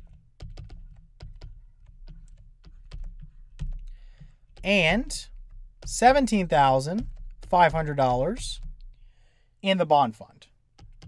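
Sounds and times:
stylus tapping on pen tablet: 0:00.0 - 0:09.3, 0:10.7 - 0:11.0.

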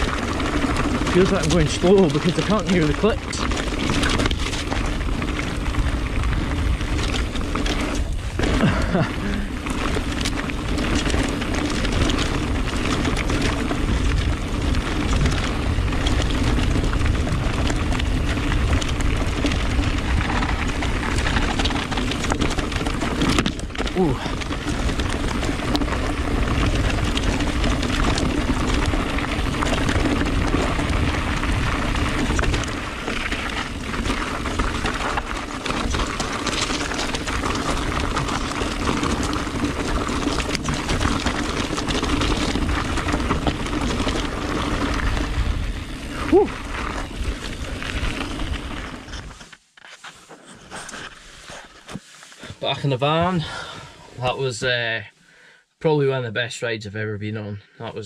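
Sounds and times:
wind on camera: 0:00.0 - 0:49.5
tyres rumbling over gravel: 0:00.0 - 0:55.1.

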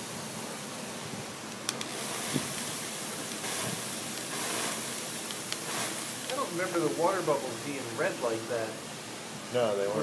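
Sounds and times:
water spraying onto metal: 0:01.8 - 0:09.2.

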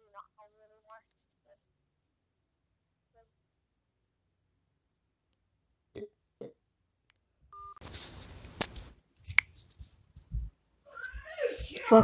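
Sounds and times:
crackling rustling noise: 0:07.8 - 0:12.0.

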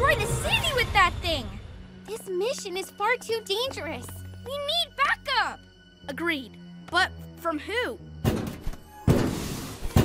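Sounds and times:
thunk sound effect: 0:08.2 - 0:10.0.

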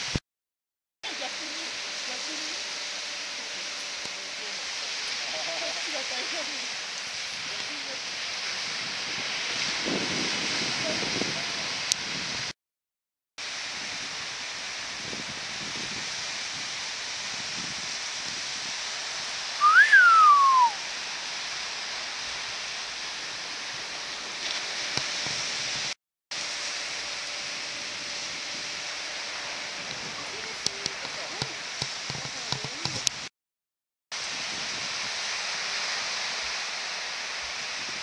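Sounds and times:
wind: 0:00.0 - 0:00.2, 0:01.0 - 0:12.5, 0:13.4 - 0:33.3, 0:34.1 - 0:38.0
surf: 0:13.4 - 0:33.3
whistled note sliding down: 0:19.6 - 0:20.8.

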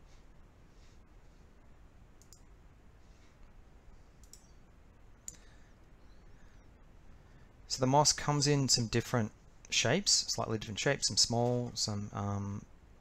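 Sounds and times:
faint clicks of small tools: 0:02.2 - 0:02.5, 0:04.2 - 0:04.6, 0:05.2 - 0:06.0.

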